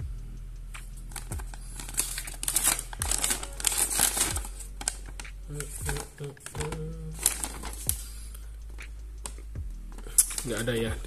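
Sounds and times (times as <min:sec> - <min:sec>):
paper leaflet rustling: 0:01.1 - 0:08.2.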